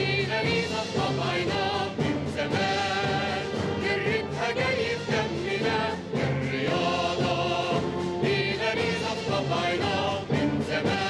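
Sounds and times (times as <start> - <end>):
choir singing: 0.0 - 11.0
orchestra strings and brass: 0.0 - 11.0.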